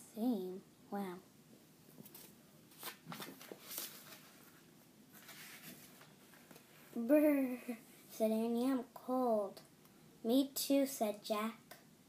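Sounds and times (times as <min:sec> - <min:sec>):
book pages rustling: 0:02.0 - 0:06.9.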